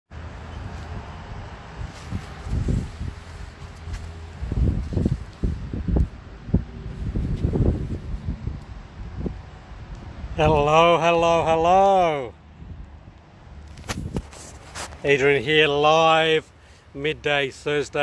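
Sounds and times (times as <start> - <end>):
wind buffeting microphone: 0.3 - 10.7, 12.5 - 14.8
microphone handling thumps: 13.7 - 15.0.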